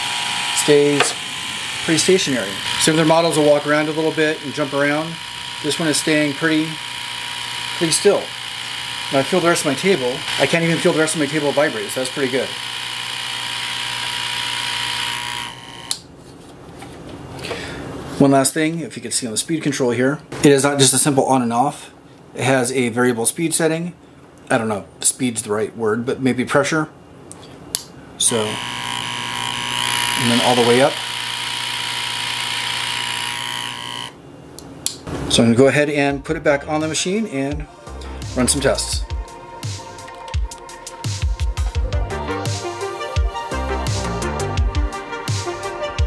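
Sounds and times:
air pump humming and hissing: 0.0 - 16.1, 28.2 - 34.2.

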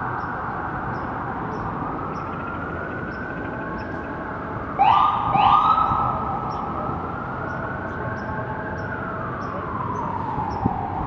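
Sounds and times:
city traffic noise: 0.0 - 11.0
emergency vehicle siren wailing: 0.0 - 11.0.

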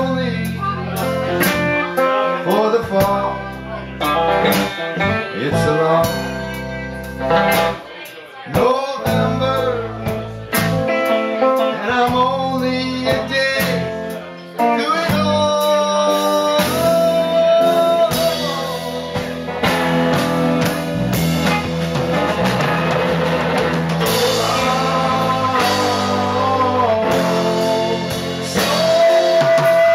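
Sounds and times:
live band playing: 0.0 - 29.9
person singing long notes: 14.6 - 19.5, 24.0 - 29.9.

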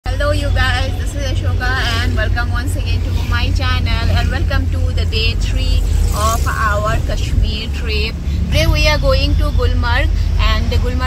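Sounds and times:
car cabin road rumble: 0.0 - 11.0
woman talking: 0.1 - 11.0.

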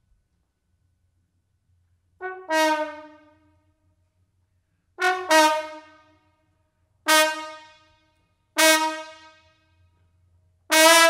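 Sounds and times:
trombone blasts: 2.2 - 3.5, 5.0 - 6.2, 7.1 - 8.0, 8.6 - 9.5, 10.7 - 11.0.

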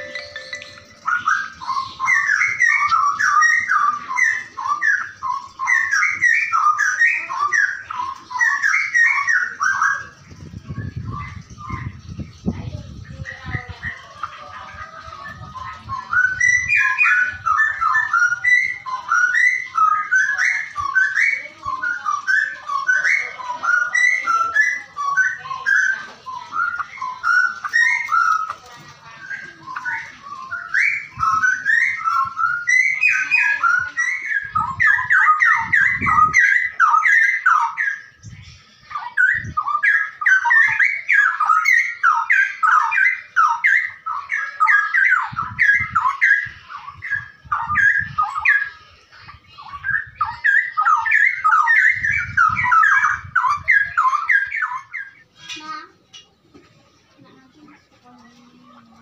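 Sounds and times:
bird whistling song: 0.0 - 56.3.

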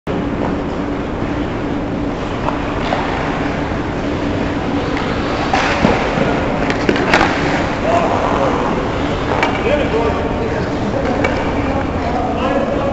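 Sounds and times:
steady low hum: 0.1 - 12.9
sticks and puck clacking: 2.2 - 3.7, 4.8 - 12.2
skates scraping on ice: 2.2 - 12.1.

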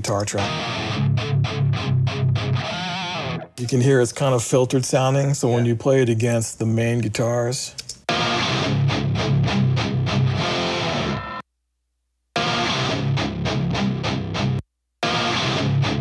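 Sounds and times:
distorted electric guitars riff: 0.0 - 3.6, 8.1 - 11.4, 12.4 - 16.0
filtered electric guitar: 0.0 - 3.6, 8.1 - 11.4, 12.4 - 16.0.

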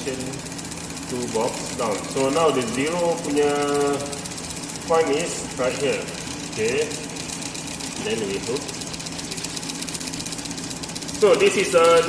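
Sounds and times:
rapid even ticking: 0.0 - 12.0
steady low hum: 0.0 - 12.0.

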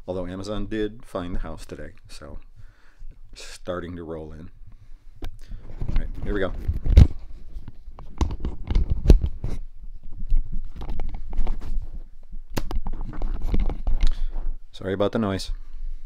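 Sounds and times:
camera handling knocks and rubbing: 5.7 - 14.1.

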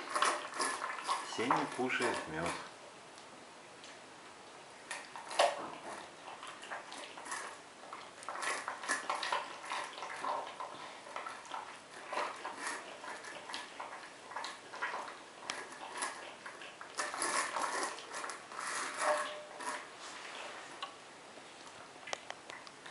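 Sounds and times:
bear cub lapping and smacking: 5.0 - 18.5.

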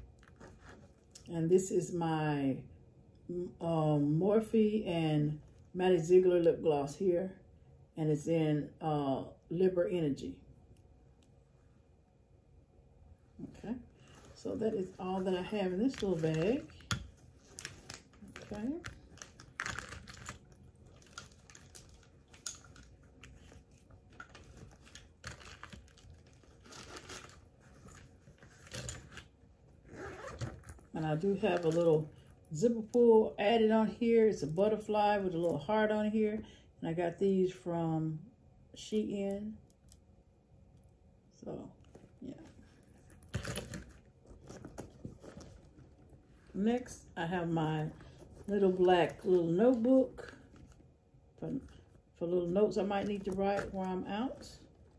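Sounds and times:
packaging rustling and crinkling: 14.0 - 32.5, 41.8 - 46.6, 47.8 - 50.9, 52.8 - 54.9
metal zipper being pulled open: 29.8 - 30.8.

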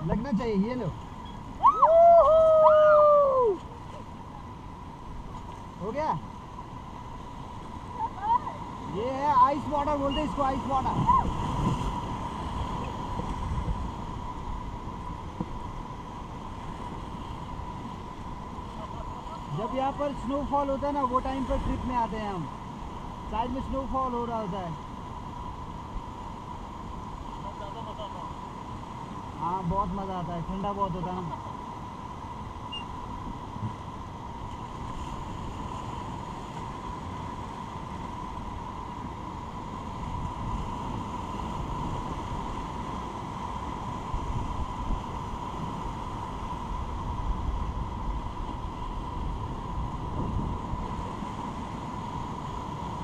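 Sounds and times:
river water rushing: 0.0 - 53.0
high voice long cry: 1.6 - 3.6.

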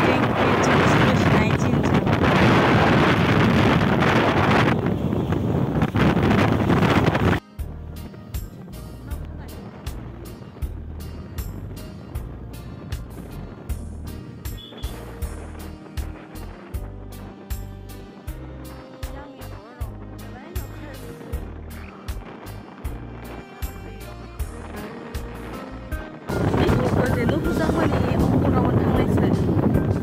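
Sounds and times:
wind buffeting microphone: 0.0 - 30.0
background music with steady beat: 7.4 - 30.0.

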